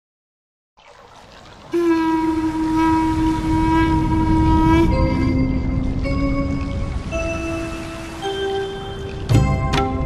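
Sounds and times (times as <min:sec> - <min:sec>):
harmonium notes: 0:01.8 - 0:09.6.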